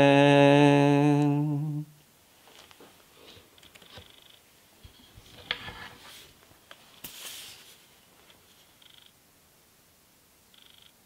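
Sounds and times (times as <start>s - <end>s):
laptop handling rustle: 5.2s - 8.8s.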